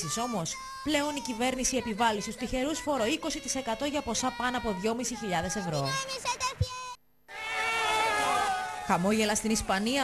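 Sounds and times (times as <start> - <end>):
high-pitched voice singing: 0.0 - 7.0.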